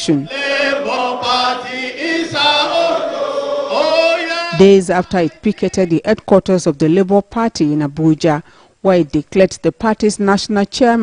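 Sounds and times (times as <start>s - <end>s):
group singing long held notes: 0.1s - 6.0s.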